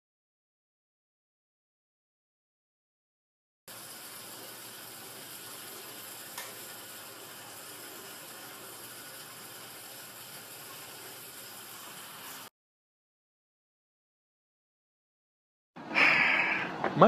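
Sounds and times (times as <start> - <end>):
steady hiss: 3.7 - 12.5.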